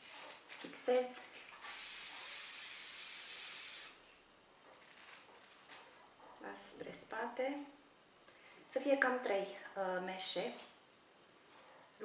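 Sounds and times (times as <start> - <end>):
aerosol hairspray hiss: 1.6 - 4.0.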